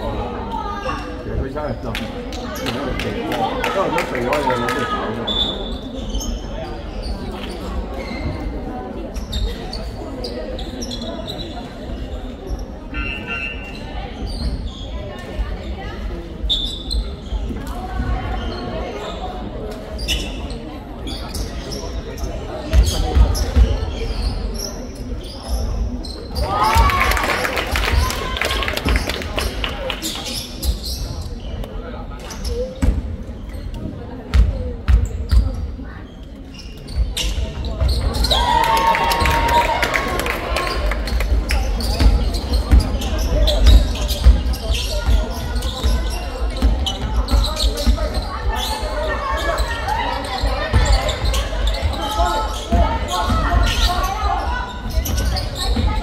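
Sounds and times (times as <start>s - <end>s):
spectators talking: 0.0s - 56.0s
basketball bouncing on gym floor: 34.3s - 35.6s, 41.9s - 48.2s.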